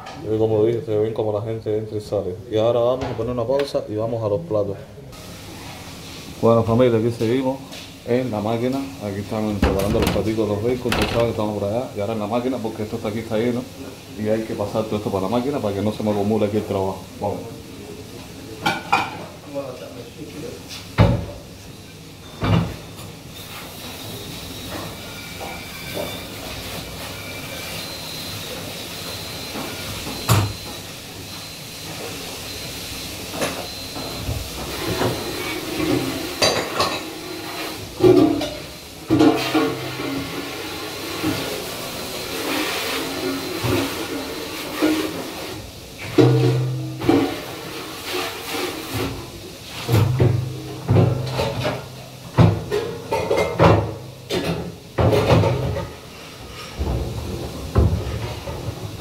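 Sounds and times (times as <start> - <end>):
dishes clattering: 9.6 - 11.6, 35.5 - 37.2, 50.0 - 56.0
water hissing: 38.6 - 45.8.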